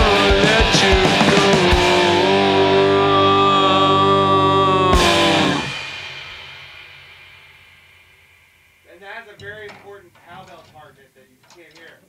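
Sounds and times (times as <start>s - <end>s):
rock band final chord: 0.0s - 10.8s.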